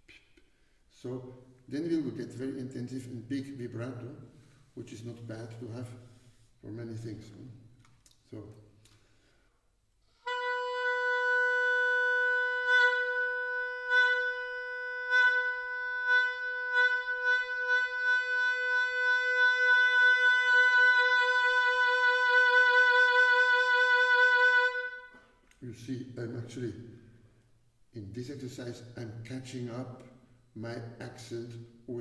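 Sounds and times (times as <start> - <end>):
oboe holding a note with vibrato: 10.2 - 25.2.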